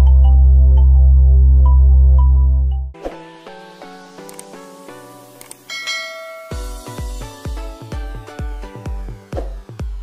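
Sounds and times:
quick clicks: 4.2 - 4.6
ringing bell chime: 5.7 - 7.1
electronic dance music: 5.9 - 10.0.

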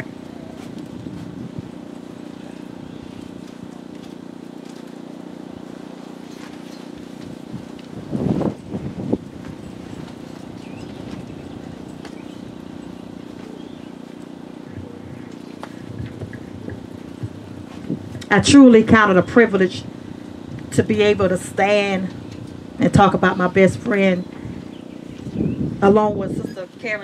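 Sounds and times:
steady low hum: 0.0 - 27.0.

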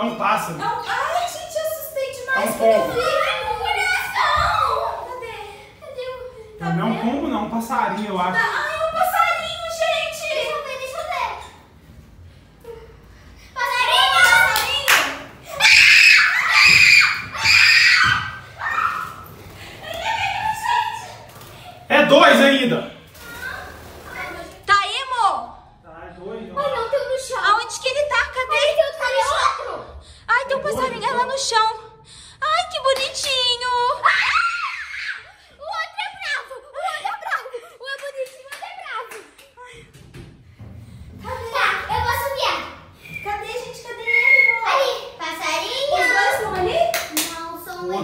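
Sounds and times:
girls screaming: 2.8 - 5.1, 15.4 - 21.3, 33.9 - 35.4.

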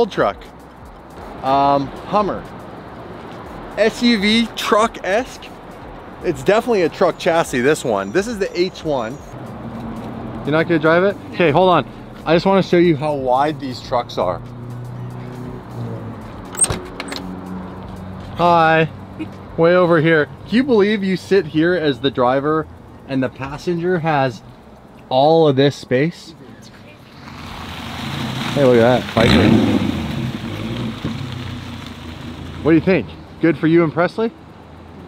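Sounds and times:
car engine running at low speed: 26.8 - 35.0.

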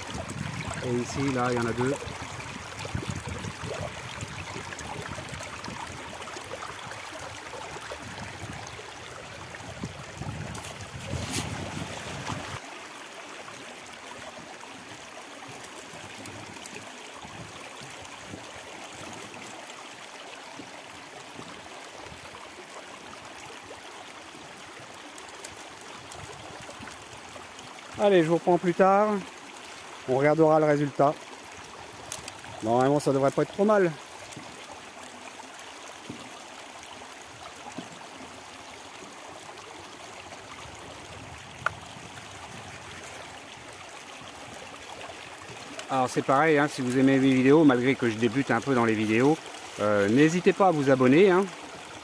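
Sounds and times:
water rushing through sluice box: 0.0 - 52.0
water splash: 9.8 - 12.7.

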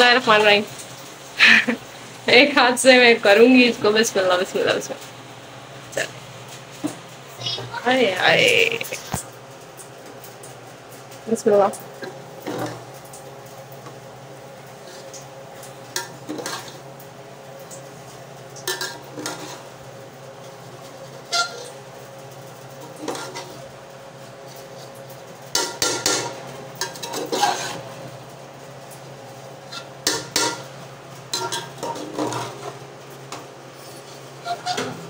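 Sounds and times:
spoon scraping metal pot: 26.9 - 27.8.

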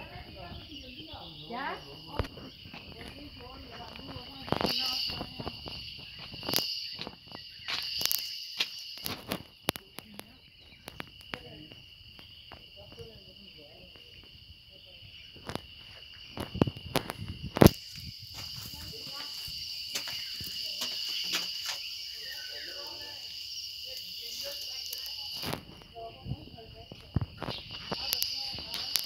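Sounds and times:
shrill insect chorus: 0.0 - 29.0
footsteps on stone: 2.1 - 9.6, 15.3 - 22.2.

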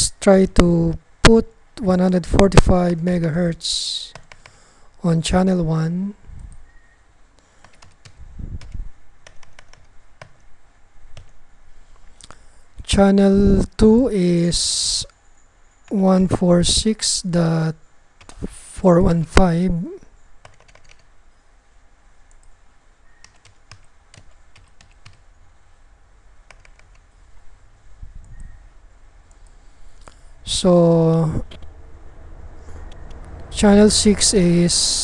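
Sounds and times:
keyboard typing clicks: 4.1 - 4.6, 7.6 - 10.5, 20.4 - 21.1, 22.3 - 22.6, 23.2 - 25.2, 26.4 - 27.1
computer keyboard key clicks: 20.4 - 21.0, 26.5 - 27.0.

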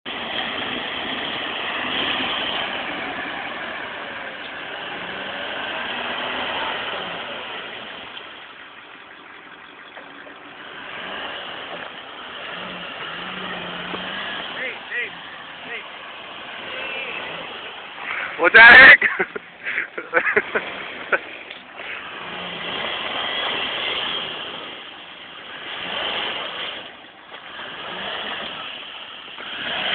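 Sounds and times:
vehicle engine revving: 0.1 - 29.9
faint voices: 13.2 - 19.0.

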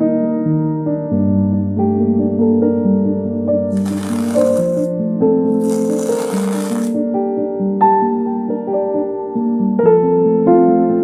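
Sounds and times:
soft piano music: 0.0 - 4.3, 7.0 - 11.0
masking tape ripping off canvas: 3.8 - 4.9, 5.5 - 7.0.

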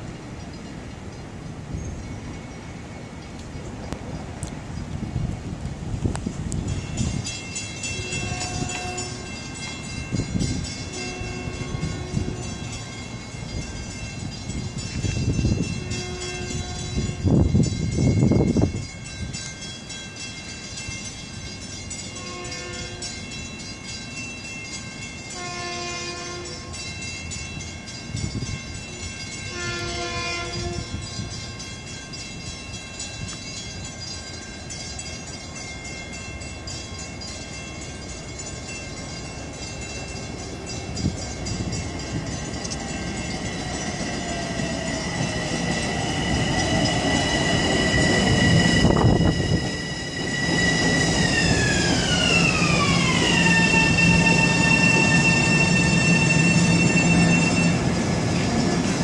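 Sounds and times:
train rumble and wheel noise: 0.0 - 59.0
train horn: 7.9 - 9.5, 10.9 - 12.9, 15.6 - 17.5, 22.1 - 23.2, 25.3 - 26.9, 29.5 - 31.3, 51.3 - 57.9.

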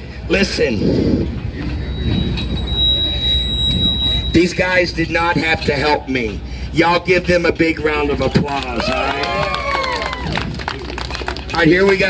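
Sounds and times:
outdoor background rumble: 0.0 - 12.0
steady high-pitched tone: 1.5 - 6.5.

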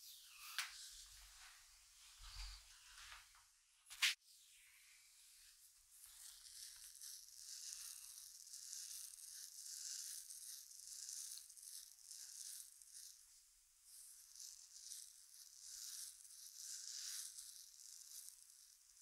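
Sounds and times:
hair rustling: 6.0 - 13.2, 13.9 - 19.0.

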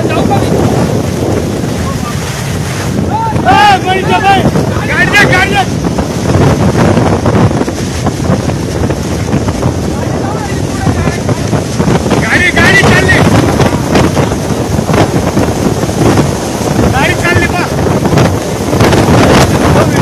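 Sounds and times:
strong wind buffeting microphone: 0.0 - 20.0.

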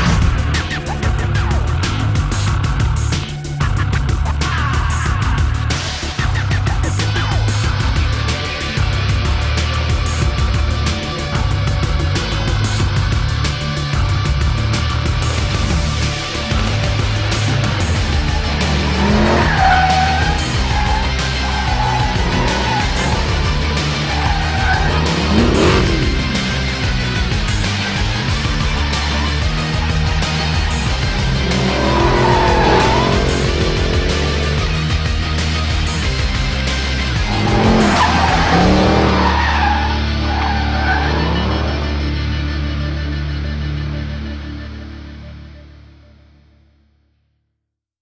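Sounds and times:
loud music: 0.0 - 45.6
car tyres squealing: 16.2 - 42.2.

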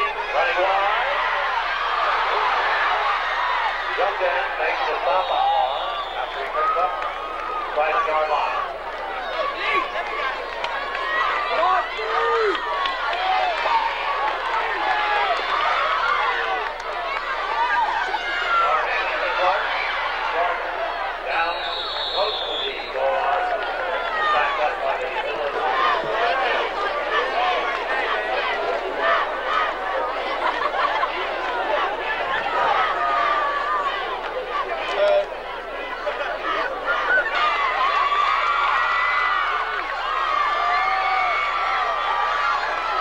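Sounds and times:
crowd shouting: 0.0 - 43.0
whistle blowing: 5.2 - 6.6, 21.3 - 23.0.

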